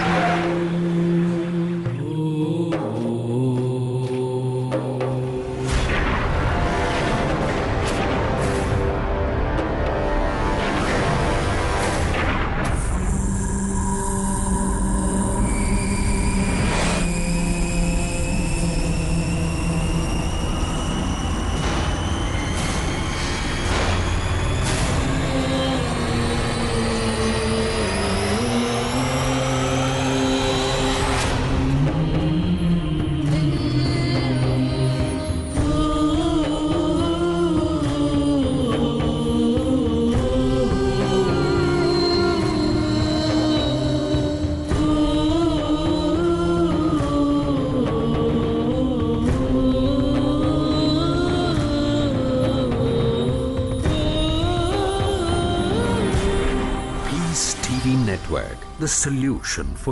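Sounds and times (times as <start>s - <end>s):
low drone: 0.0s - 59.9s
wordless chanted vocal music: 0.0s - 59.9s.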